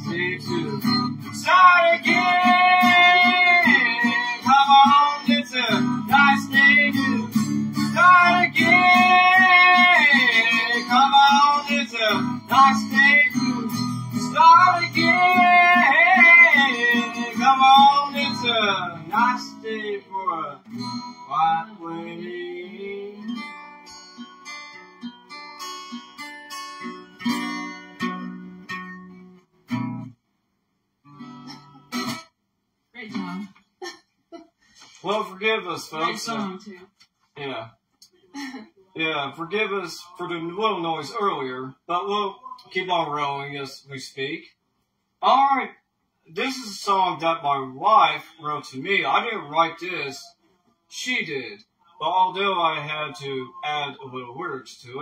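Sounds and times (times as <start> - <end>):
strummed acoustic guitar: 0.0 - 30.2, 31.0 - 32.4, 34.8 - 36.8, 39.0 - 43.4, 46.4 - 50.3, 50.9 - 55.0
woman singing with vibrato: 2.1 - 4.5.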